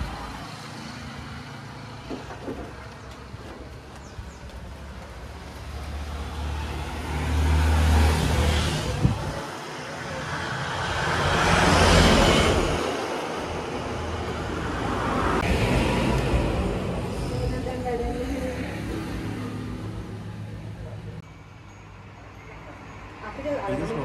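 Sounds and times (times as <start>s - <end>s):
road traffic passing: 0.0s - 24.0s.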